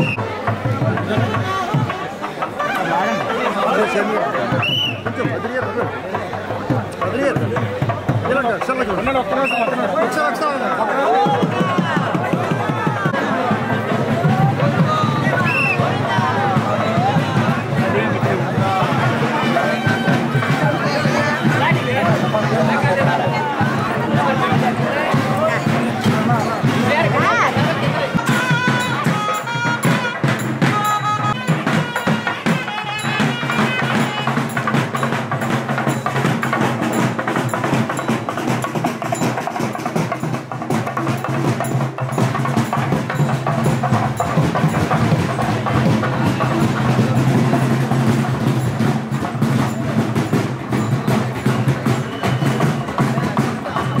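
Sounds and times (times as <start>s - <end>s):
fast drumming and percussion: 0.0s - 54.0s.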